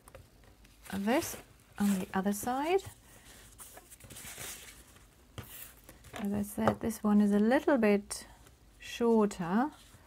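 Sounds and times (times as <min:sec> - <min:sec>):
paper rustling on cutting mat: 0:00.7 - 0:06.2.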